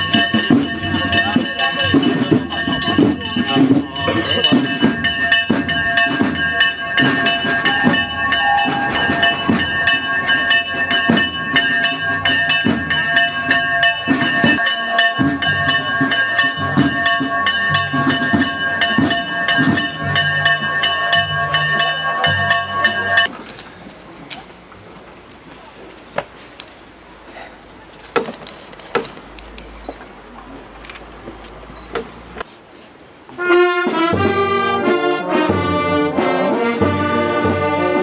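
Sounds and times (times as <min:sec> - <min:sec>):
bells ringing a fast peal: 0:00.0 - 0:23.3
crowd noise: 0:00.0 - 0:33.4.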